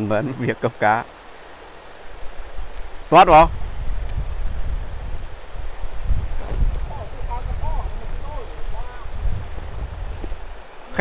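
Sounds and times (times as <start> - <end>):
stream rushing: 0.0 - 11.0
wind buffeting microphone: 2.0 - 10.8.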